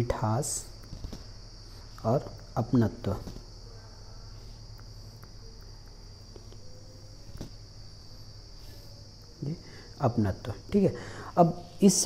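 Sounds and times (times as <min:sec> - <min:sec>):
crickets chirring: 0:00.0 - 0:12.0
faint low hum: 0:00.0 - 0:12.0.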